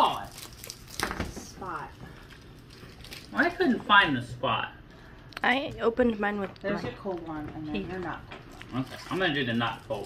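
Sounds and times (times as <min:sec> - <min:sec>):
plastic wrappers handled: 0:00.0 - 0:04.1, 0:07.8 - 0:10.0.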